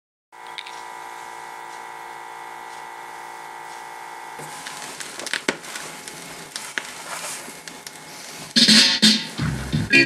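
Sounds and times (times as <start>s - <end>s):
high thin electrical hum: 0.4s - 10.0s.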